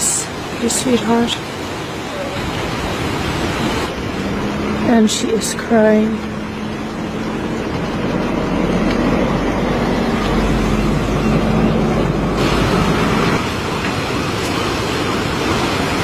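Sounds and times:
surf rushing: 0.0s - 16.0s.

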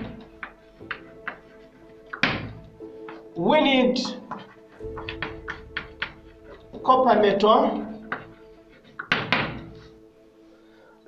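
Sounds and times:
chalk tapping and scraping on chalkboard: 0.0s - 3.4s, 4.0s - 6.2s, 8.0s - 10.0s.

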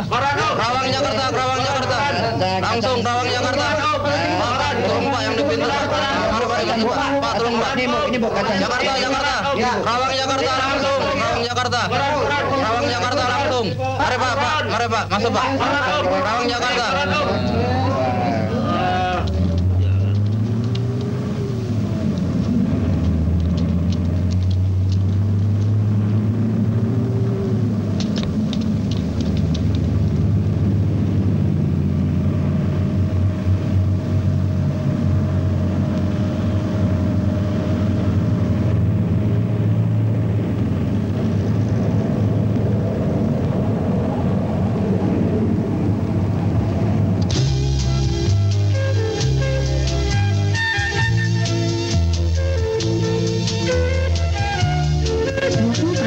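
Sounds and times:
bus engine droning: 0.0s - 56.0s.

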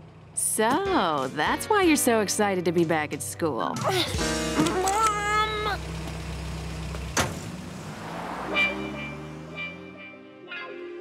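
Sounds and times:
car engine humming: 0.0s - 10.3s.

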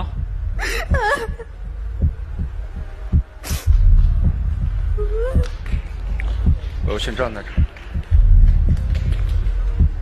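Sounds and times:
deep rumble: 0.0s - 10.0s
heartbeat-like low thuds: 0.0s - 10.0s.

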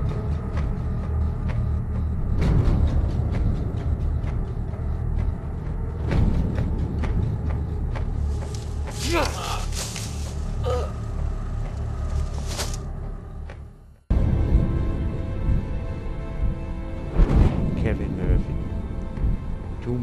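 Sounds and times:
person crying out: 9.0s - 10.0s, 10.6s - 11.0s.

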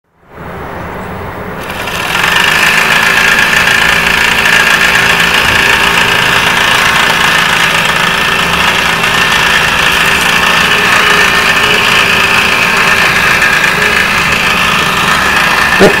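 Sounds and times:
miniature steam engine running: 1.6s - 16.0s.

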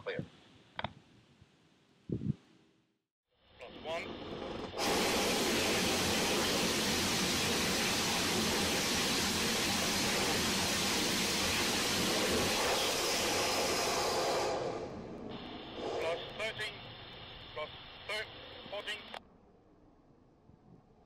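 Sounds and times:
rocket engine rushing hiss: 4.8s - 18.7s.

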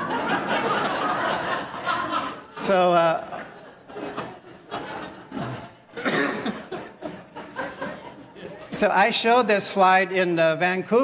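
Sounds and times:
audience laughing: 0.0s - 8.9s.

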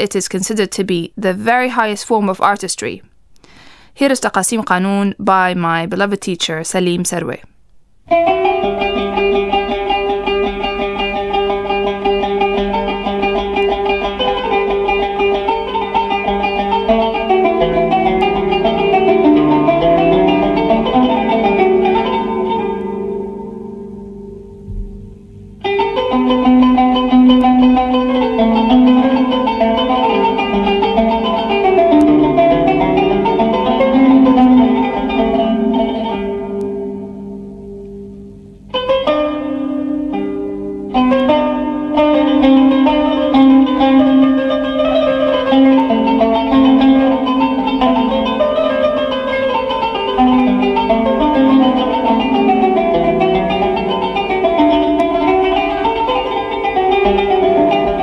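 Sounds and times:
plucked zither playing: 8.1s - 58.0s.

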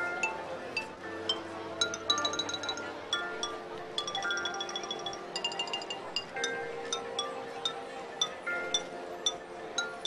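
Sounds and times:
mallet percussion bell-like notes: 0.0s - 10.0s.

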